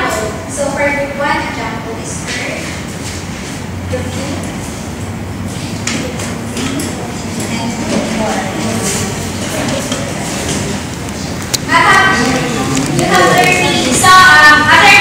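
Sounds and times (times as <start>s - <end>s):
murmur of voices: 3.7s - 15.0s.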